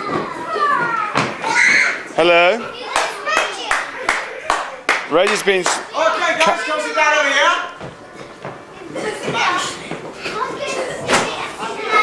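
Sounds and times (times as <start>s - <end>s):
hands clapping a steady beat: 2.9s - 5.8s.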